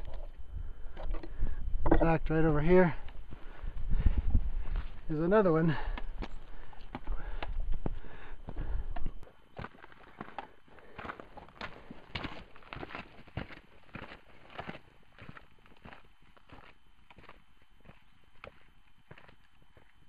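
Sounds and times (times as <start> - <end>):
wind rumble on microphone: 0.0 - 5.3, 6.1 - 9.2
boots crunching on gravel: 9.5 - 20.0.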